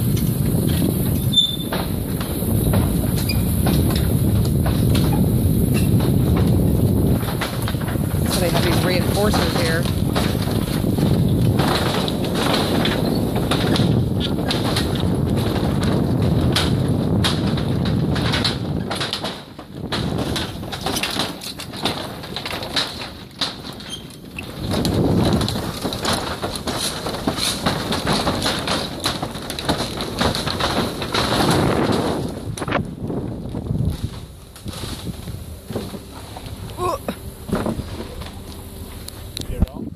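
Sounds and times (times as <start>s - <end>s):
wooden boards knocking and clacking: 0.0s - 39.2s
car tyres rumbling on wooden planks: 0.0s - 39.9s.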